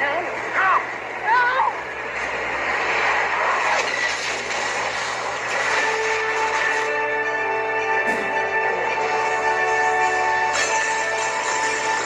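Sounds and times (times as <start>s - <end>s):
steady rushing noise: 0.0s - 7.1s.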